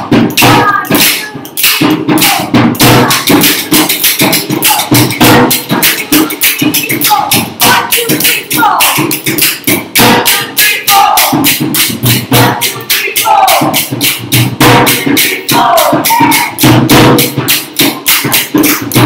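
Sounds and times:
person singing: 0:00.0 - 0:11.6, 0:12.3 - 0:14.0, 0:14.8 - 0:19.0
deep drum beats: 0:00.0 - 0:19.0.

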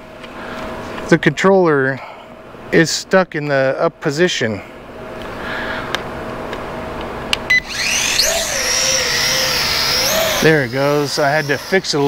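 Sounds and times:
drone motors whining: 0:07.5 - 0:12.0.

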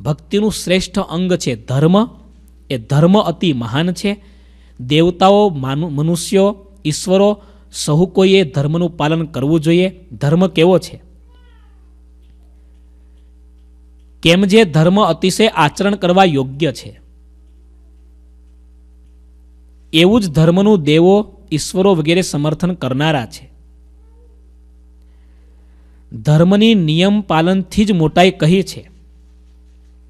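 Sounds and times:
low electrical hum: 0:00.0 - 0:30.0
faint high-pitched cry: 0:11.2 - 0:12.7, 0:23.9 - 0:24.6.

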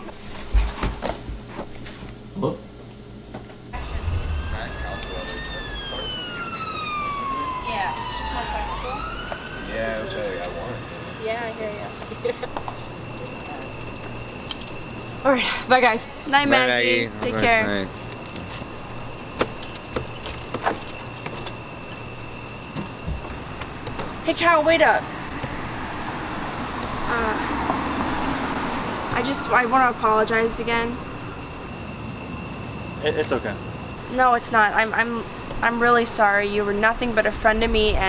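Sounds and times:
low rumble: 0:03.8 - 0:07.0
emergency siren wailing: 0:03.8 - 0:11.9
keys jangling: 0:12.9 - 0:15.0, 0:17.9 - 0:22.8.

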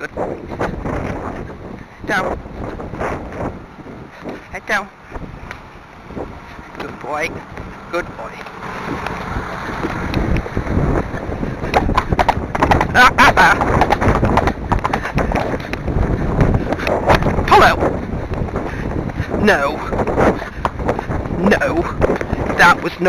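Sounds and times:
wind buffeting microphone: 0:00.0 - 0:23.0
tractor passing by: 0:05.0 - 0:15.9.

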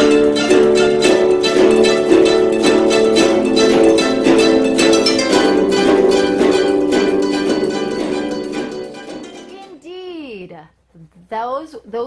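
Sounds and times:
koto ensemble playing: 0:00.0 - 0:09.9.

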